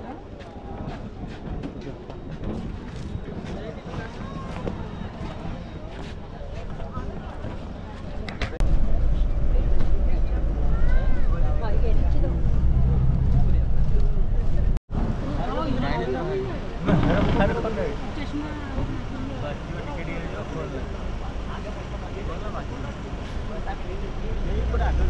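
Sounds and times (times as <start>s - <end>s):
passengers chattering: 0.0s - 25.0s
people's voices: 0.0s - 25.0s
bus engine rumbling: 0.1s - 25.0s.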